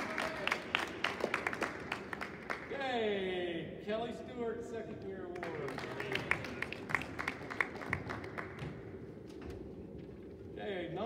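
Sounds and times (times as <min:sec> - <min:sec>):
audience clapping in echoing gym: 0:00.0 - 0:03.0, 0:05.2 - 0:09.1.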